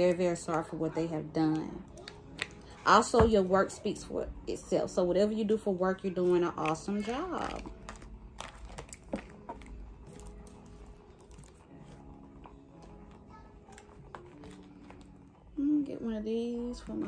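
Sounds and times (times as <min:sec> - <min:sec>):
paper cards tapping and rustling: 0:06.6 - 0:15.2.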